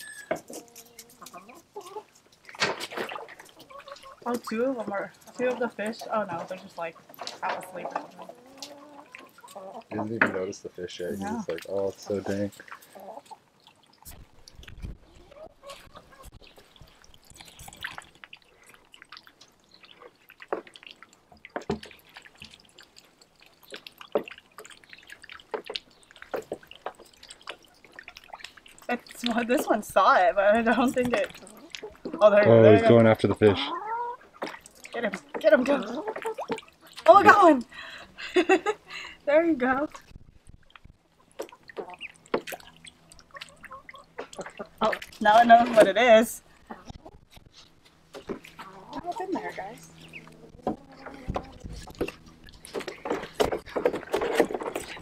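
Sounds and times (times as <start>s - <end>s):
ducks splashing in water: 0.0s - 10.0s, 11.5s - 55.0s
small plops and drips: 0.6s - 10.5s, 11.2s - 55.0s
short sharp splashes: 2.4s - 5.5s, 16.6s - 29.8s, 34.3s - 37.7s.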